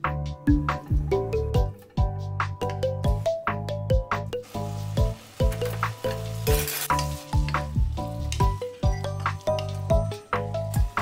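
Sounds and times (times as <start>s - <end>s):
soft music with steady beat: 0.0s - 11.0s
food sizzling in a pan: 4.4s - 8.8s.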